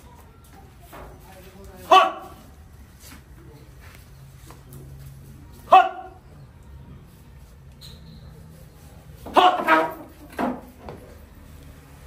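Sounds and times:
man shouting sharply: 0:01.9 - 0:02.3, 0:05.7 - 0:06.2, 0:09.3 - 0:10.0.

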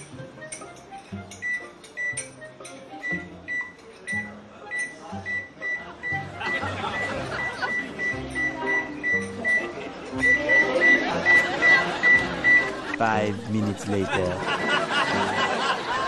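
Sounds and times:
microwave keypad beeping: 0:01.4 - 0:13.0.

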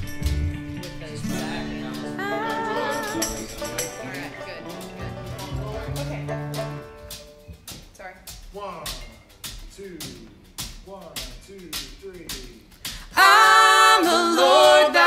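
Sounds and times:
acoustic bluegrass band playing: 0:00.0 - 0:07.7
guitar strums: 0:00.0 - 0:09.6.

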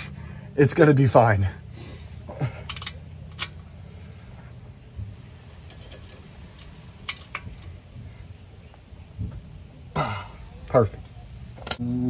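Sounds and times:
socket wrench clicking: 0:02.6 - 0:03.6.

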